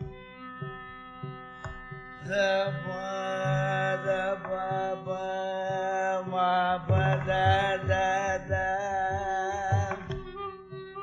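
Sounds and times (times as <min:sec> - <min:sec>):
mridangam strokes: 0:00.0 - 0:11.0
ornamented melodic line: 0:00.0 - 0:11.0.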